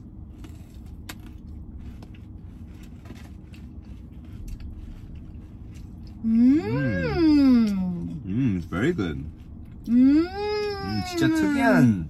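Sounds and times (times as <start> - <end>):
low car interior hum: 0.0 - 12.0.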